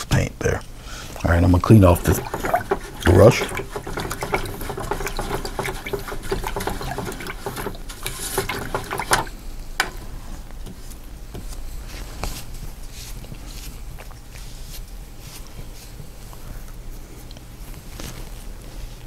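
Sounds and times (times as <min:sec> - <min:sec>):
paintbrush swishing in liquid: 0:01.2 - 0:09.4.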